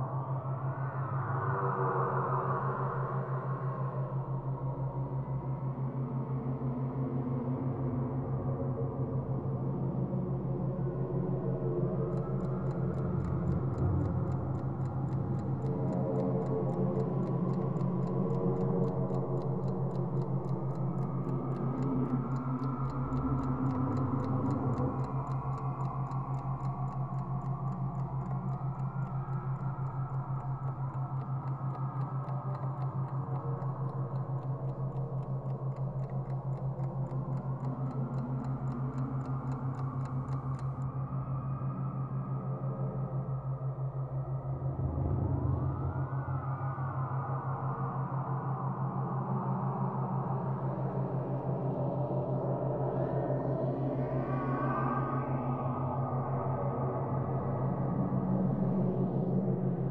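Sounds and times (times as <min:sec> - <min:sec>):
clock ticking: 0:12.1 - 0:40.8.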